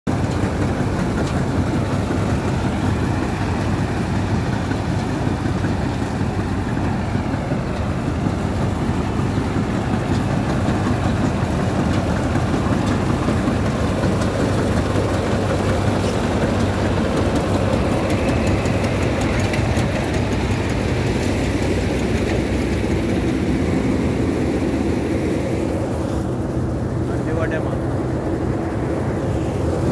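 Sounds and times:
combine harvester running: 0.1s - 29.9s.

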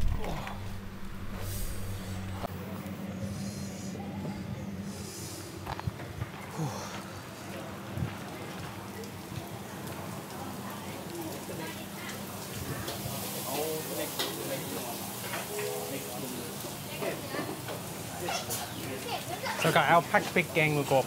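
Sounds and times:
people talking: 6.5s - 21.0s
food sizzling frying: 8.7s - 21.0s.

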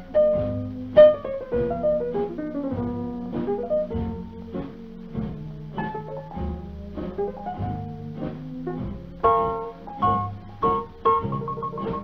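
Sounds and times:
swing band record: 0.0s - 12.0s.

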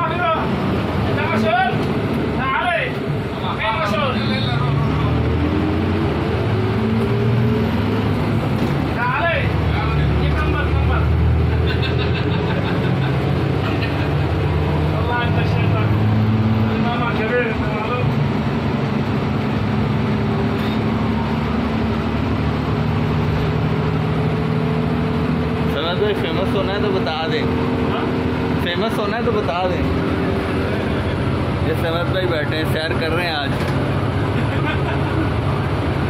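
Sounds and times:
minibus engine: 0.0s - 36.0s
road noise: 0.0s - 36.0s.

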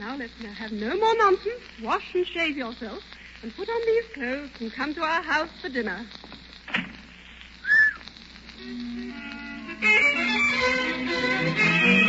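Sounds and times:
orchestral bridge music: 8.8s - 12.0s.

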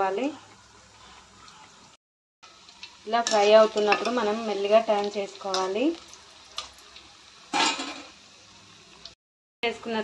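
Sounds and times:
fritters sizzling in hot oil: 0.0s - 10.0s.

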